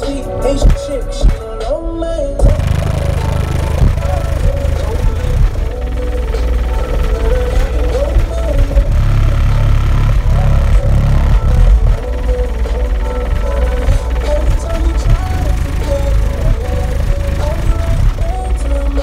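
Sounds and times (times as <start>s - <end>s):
rap music with heavy bass: 0.0s - 19.0s.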